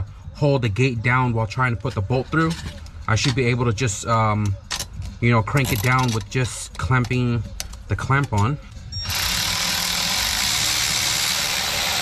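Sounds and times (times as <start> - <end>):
cordless power driver running: 9.1 - 12.0.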